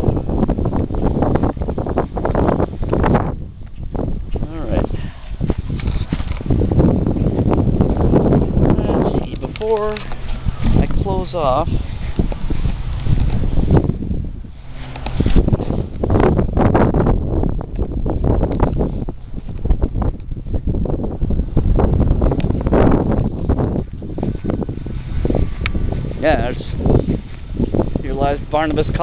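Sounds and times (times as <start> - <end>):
wind buffeting microphone: 0.0 - 29.0
footsteps on grass: 5.1 - 16.7, 19.1 - 28.4.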